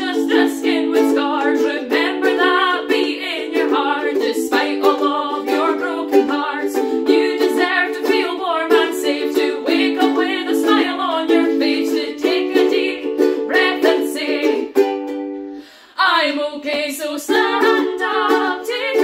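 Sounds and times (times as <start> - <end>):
women singing together: 0.0 - 14.8, 16.0 - 19.0
ukuleles strumming: 0.0 - 19.0.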